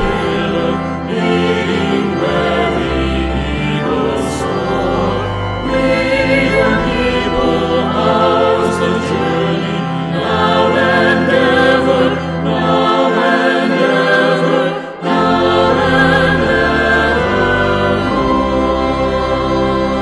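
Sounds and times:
pipe organ: 0.0 - 20.0
small choir singing a hymn: 0.0 - 20.0.

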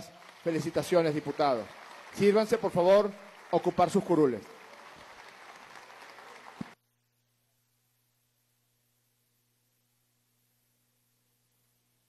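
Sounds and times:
applause: 0.0 - 6.8
crowd noise: 0.0 - 6.8.

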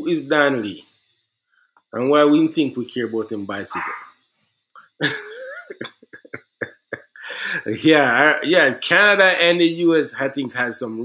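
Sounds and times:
man's drawn-out voiced sound: 3.6 - 4.1
man's short sharp vocal bursts: 3.7 - 4.1.

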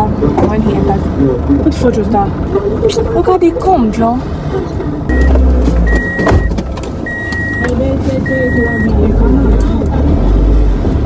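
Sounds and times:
low rumble inside car: 0.0 - 11.0
car warning chime beeping: 5.1 - 9.1.

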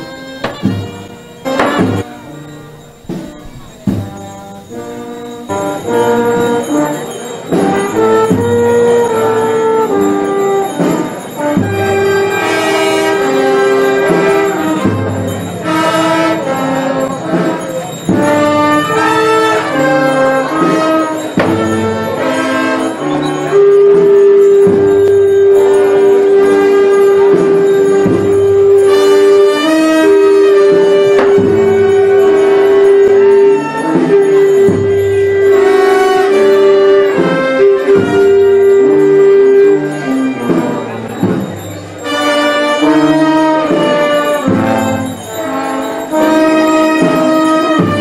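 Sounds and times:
brass band playing a march: 0.0 - 48.0.

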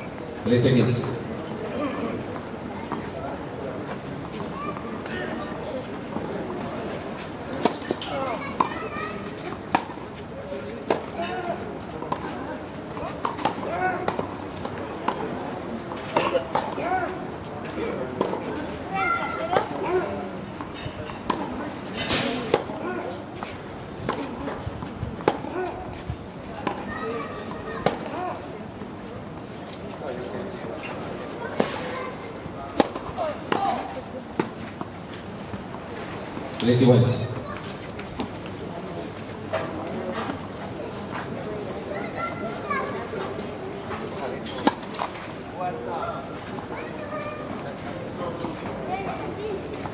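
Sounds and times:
spectators chattering: 0.0 - 49.9
tennis ball struck by racquet: 22.1 - 22.7, 32.7 - 34.5.

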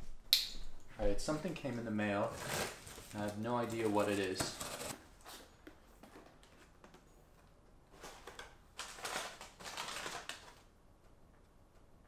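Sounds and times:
packaging rustling: 2.1 - 5.0, 7.9 - 10.7.

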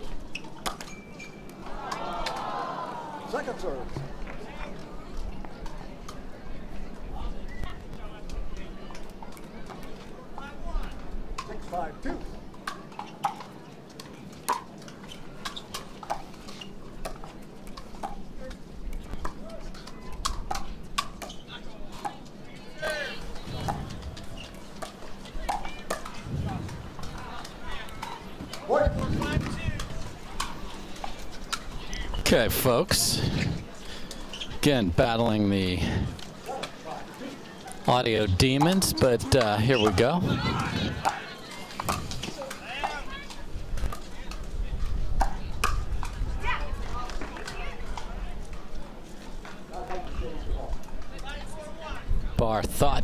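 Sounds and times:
murmur of voices: 1.6 - 53.0.

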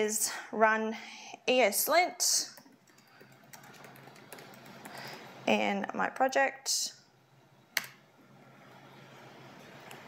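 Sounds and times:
typing on computer keyboard: 2.6 - 5.2.

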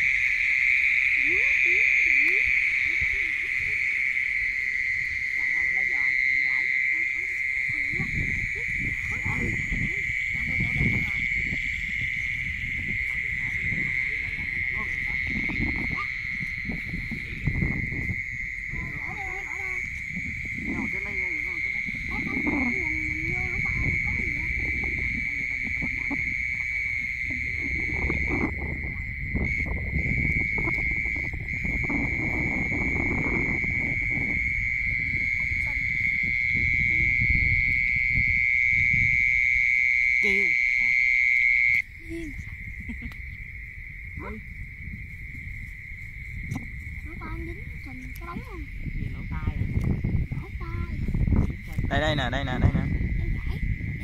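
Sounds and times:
insects trilling: 0.0 - 54.0.

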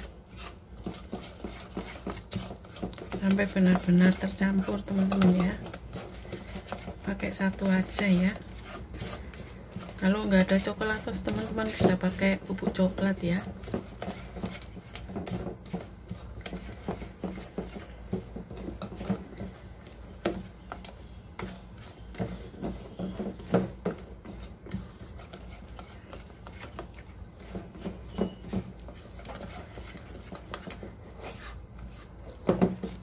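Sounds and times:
spatula scraping metal bowl: 0.0 - 33.0.

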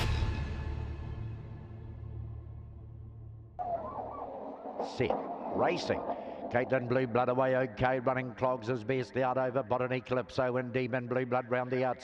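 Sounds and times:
dogs whining and yelping: 3.6 - 6.4.

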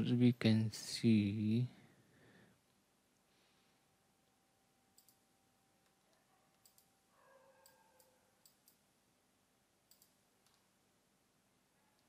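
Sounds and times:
low background hiss: 0.0 - 12.0
faint computer mouse clicks: 5.0 - 5.2, 5.8 - 6.9, 7.6 - 8.8, 9.9 - 10.7.

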